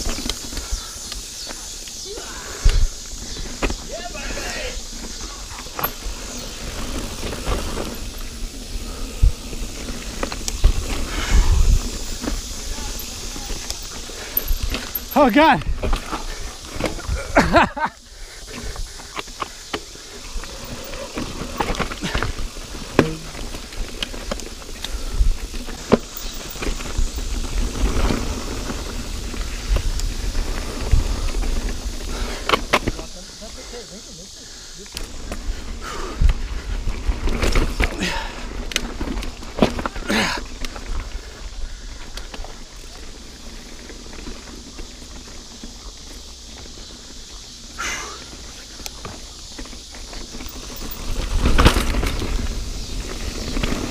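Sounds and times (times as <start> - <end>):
bike clicks and rattles: 0.0 - 4.0, 4.9 - 53.9
bike tyres on dirt and rock: 0.0 - 53.9
wind on microphone: 6.6 - 13.7.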